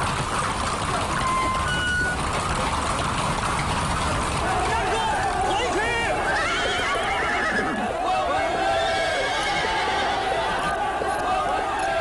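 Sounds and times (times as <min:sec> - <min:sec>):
hooves clopping: 0:00.0 - 0:12.0
horses neighing: 0:03.6 - 0:10.8
crowd of men shouting: 0:04.4 - 0:12.0.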